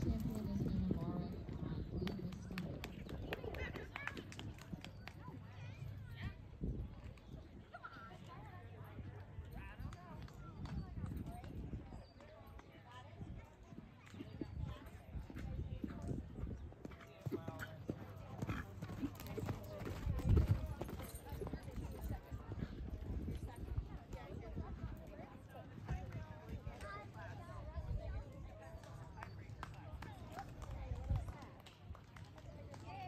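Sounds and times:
horse hoofbeats on sand: 0.0 - 5.3, 14.1 - 26.9
voices talking: 0.0 - 6.5.

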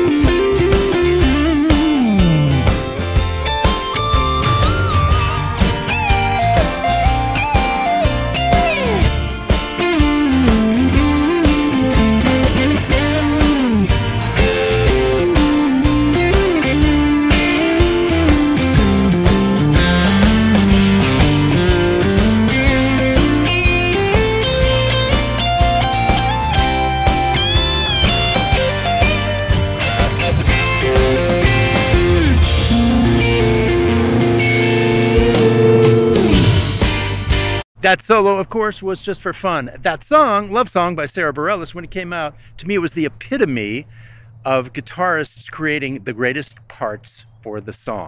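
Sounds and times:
electric guitar solo with string bends: 0.0 - 37.1
bass guitar: 0.0 - 37.6
drums: 0.0 - 37.7.

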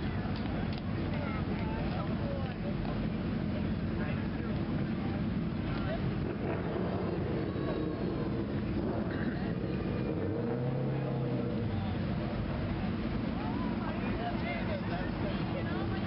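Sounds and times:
low hum: 0.0 - 16.0
traffic rumble: 0.0 - 16.0
indistinct voices talking: 0.9 - 16.0.

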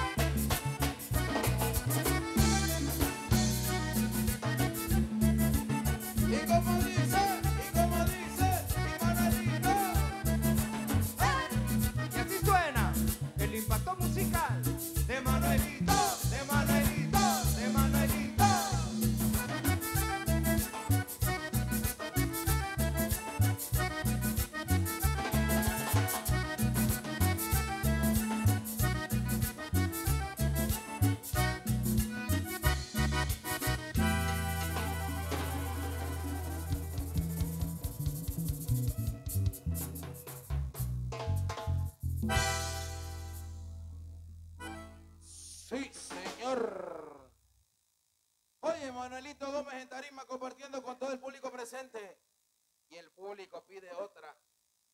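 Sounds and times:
driving beat: 0.0 - 43.2
drums: 0.0 - 43.6, 45.8 - 46.7
bass guitar: 0.0 - 45.6
accordion: 0.0 - 46.3.

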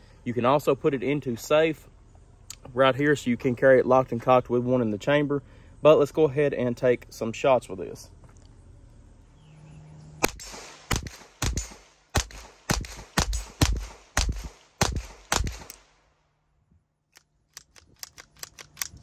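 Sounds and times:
pistol shots: 10.2 - 16.0.

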